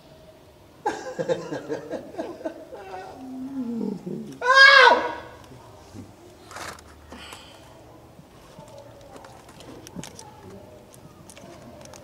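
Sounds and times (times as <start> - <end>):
person yelling: 4.4 - 5.2.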